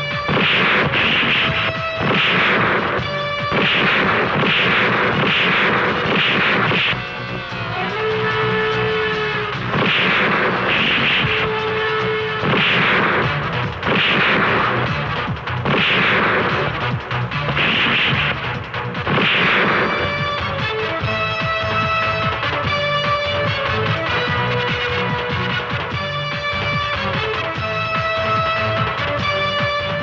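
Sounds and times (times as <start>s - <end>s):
background music with held notes: 0.0s - 30.0s
punches hitting: 0.1s - 7.0s, 9.7s - 11.8s, 12.4s - 15.0s, 15.6s - 16.8s, 17.4s - 18.4s, 19.0s - 20.4s.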